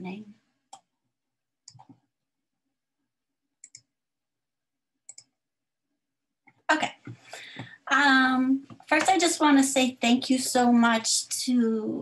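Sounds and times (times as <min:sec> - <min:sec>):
computer mouse clicking: 0:01.6 - 0:02.0, 0:03.6 - 0:03.9, 0:05.1 - 0:05.3.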